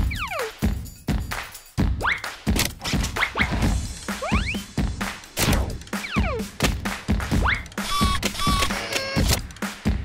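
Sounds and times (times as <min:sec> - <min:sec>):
playful background music: 0:00.0 - 0:10.0.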